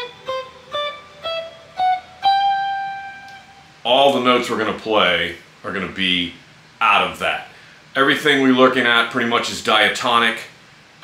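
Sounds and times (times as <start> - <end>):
electric guitar playing a scale: 0.0 - 4.7.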